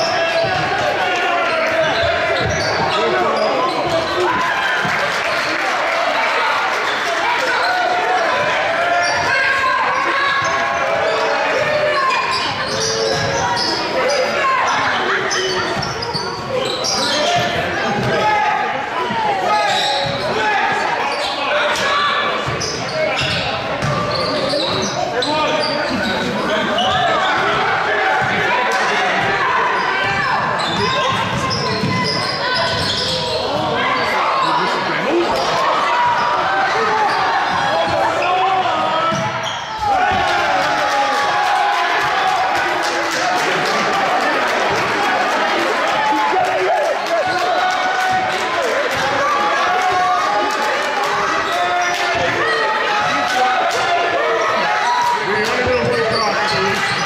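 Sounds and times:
voices echoing in a hall: 0.0s - 57.0s.

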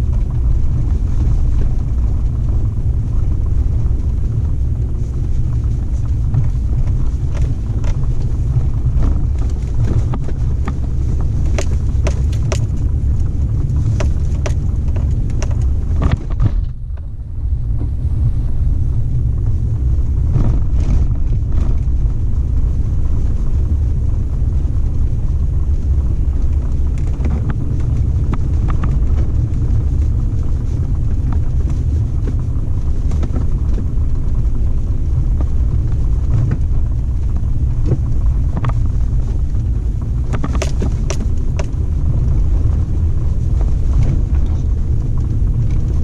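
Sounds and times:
vehicle engine and tyres rumbling: 0.0s - 46.0s.

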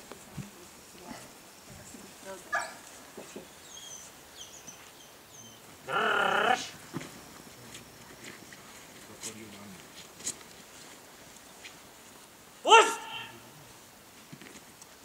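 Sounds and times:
small birds chirping: 1.9s - 6.6s
loud cry: 5.9s - 6.8s, 12.6s - 13.4s.

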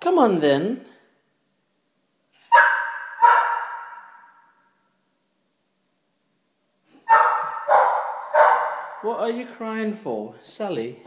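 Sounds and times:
dog barking: 2.5s - 4.7s, 7.0s - 9.1s.

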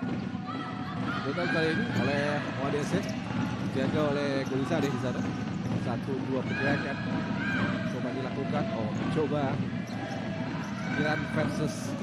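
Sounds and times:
players shouting: 6.2s - 12.0s.

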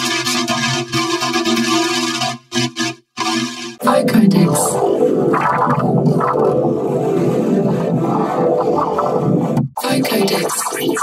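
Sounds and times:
heavily distorted warped tones: 3.8s - 11.0s.

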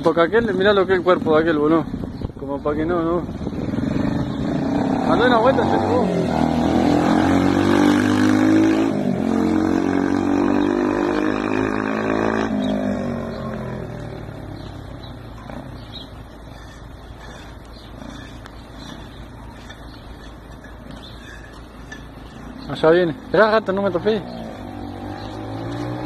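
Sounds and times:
motorcycle engine revving past: 3.2s - 19.2s, 21.0s - 26.0s.

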